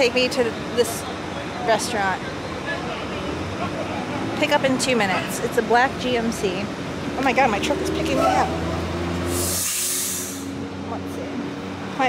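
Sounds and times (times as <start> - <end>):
traffic noise with faint hum: 0.0 - 12.0
hiss of air: 9.3 - 10.5.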